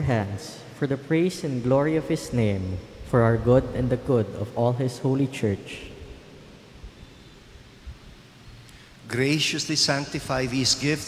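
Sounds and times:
microphone room tone hiss: 0.0s - 11.0s.

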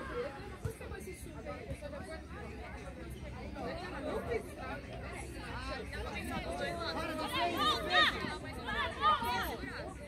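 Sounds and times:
chatter of overlapping voices: 0.0s - 10.0s.

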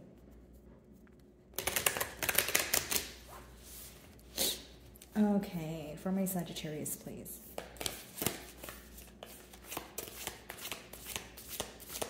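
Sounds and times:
cards being shuffled: 1.5s - 3.9s, 7.5s - 12.0s.

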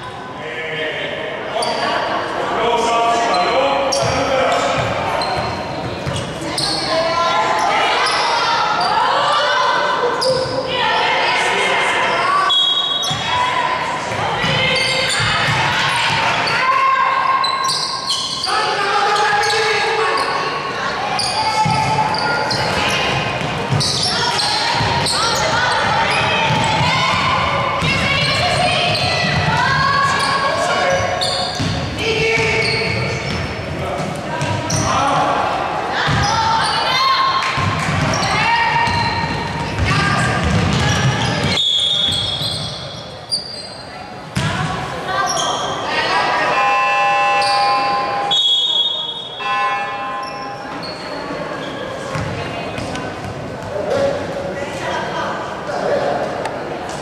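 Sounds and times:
voices calling out: 1.6s - 57.0s.

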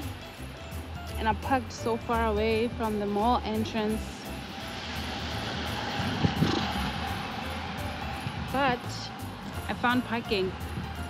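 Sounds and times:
traffic rushing: 0.0s - 11.0s
wind rumbling on microphone: 4.6s - 11.0s.

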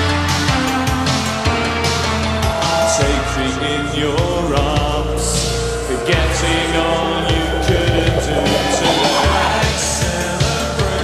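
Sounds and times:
sustained synthesizer chords: 5.8s - 10.3s.

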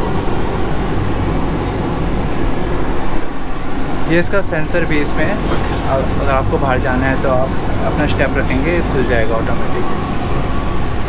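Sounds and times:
train cabin low hum: 0.0s - 11.0s
even hiss: 4.1s - 10.1s.

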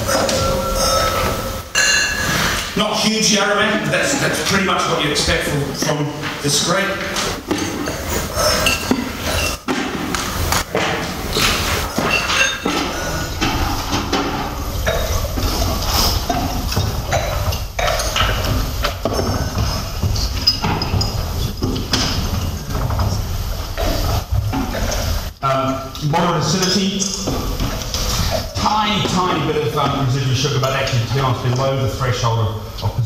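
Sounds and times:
knocks and clinks: 0.0s - 2.7s, 11.8s - 23.2s
wine slurped and swished in mouth: 7.0s - 9.7s, 10.3s - 25.4s.

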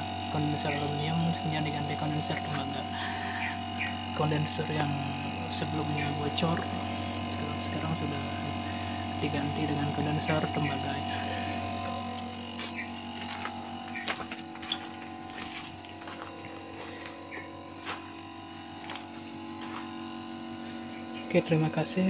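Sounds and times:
air conditioner unit humming: 0.0s - 22.0s.

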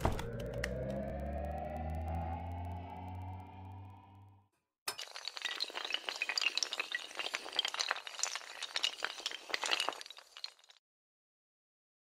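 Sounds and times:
sustained musical tone: 0.0s - 4.4s
tinkling glass fragments: 4.9s - 10.7s
glass shattering: 4.9s - 10.8s.

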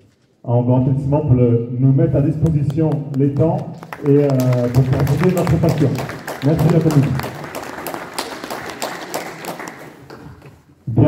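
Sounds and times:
audience clapping: 2.4s - 10.7s.

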